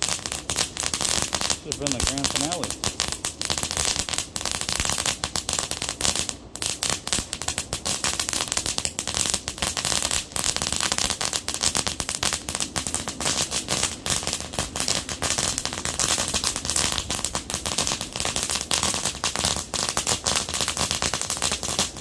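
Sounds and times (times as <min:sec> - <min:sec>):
firework crackling: 0:00.0 - 0:22.0.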